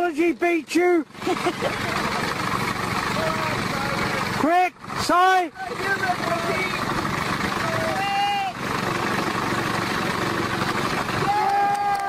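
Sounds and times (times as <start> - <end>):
lawn mower engine running: 1.0 - 11.8.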